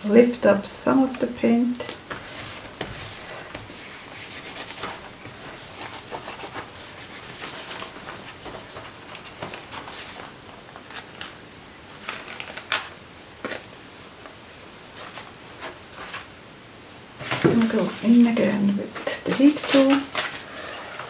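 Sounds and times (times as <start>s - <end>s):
paper rustling under hands: 1.0s - 16.4s, 17.2s - 21.0s
paper peeled away crackling: 2.1s - 13.7s.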